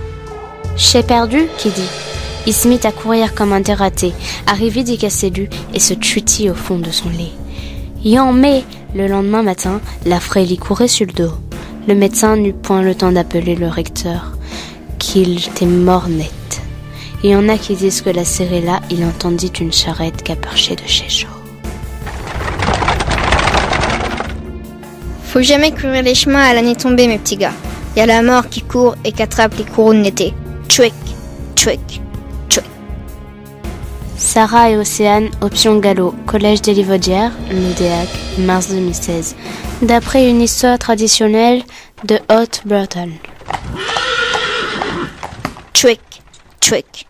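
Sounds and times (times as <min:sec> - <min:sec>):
rapid clattering rattle: 0:22.0 - 0:24.5, 0:41.7 - 0:43.7, 0:45.2 - 0:47.0
horse whinnying: 0:43.2 - 0:45.7.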